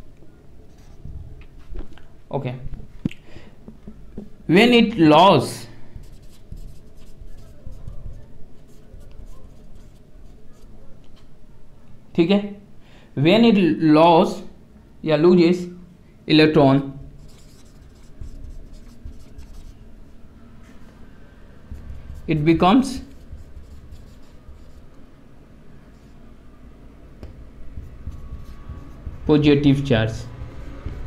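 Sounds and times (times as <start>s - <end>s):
marker writing on whiteboard: 5.9s - 10.8s, 17.2s - 20.9s, 21.7s - 25.0s, 27.2s - 31.0s.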